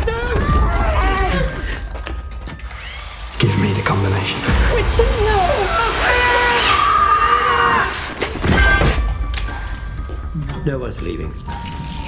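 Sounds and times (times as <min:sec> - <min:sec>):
horror soundtrack music: 0:00.0 - 0:12.0
woman screaming: 0:04.9 - 0:09.0.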